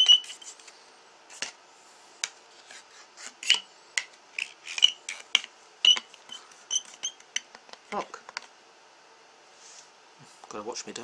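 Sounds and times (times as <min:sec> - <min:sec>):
dart scratching a disc: 0:00.0 - 0:00.7, 0:04.4 - 0:07.5.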